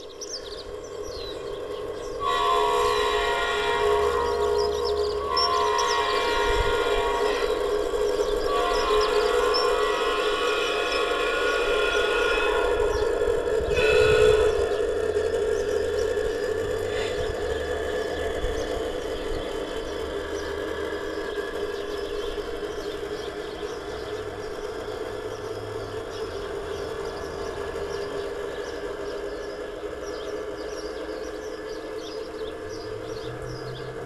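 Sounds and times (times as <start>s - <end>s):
low rumble of running train: 0.0s - 34.0s
model locomotive horn blasts: 1.6s - 15.8s.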